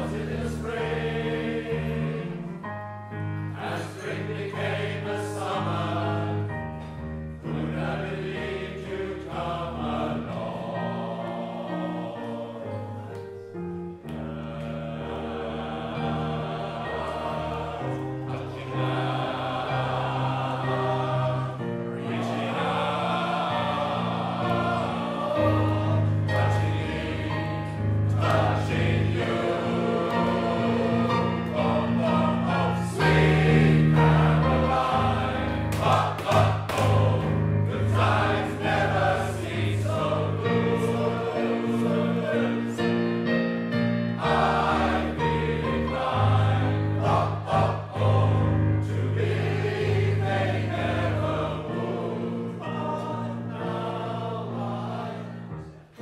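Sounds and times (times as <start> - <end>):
male voice choir singing: 0.0 - 2.6, 3.6 - 6.7, 7.4 - 13.2, 14.1 - 43.2, 44.2 - 55.5.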